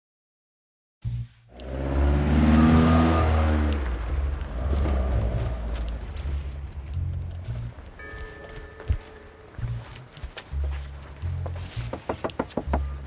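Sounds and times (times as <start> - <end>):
background music with low bass: 1.0 - 13.0
car engine slowing down: 1.5 - 8.6.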